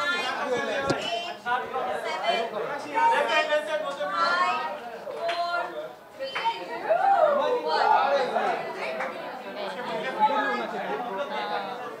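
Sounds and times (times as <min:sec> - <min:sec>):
indoor crowd chatter: 0:00.0 - 0:12.0.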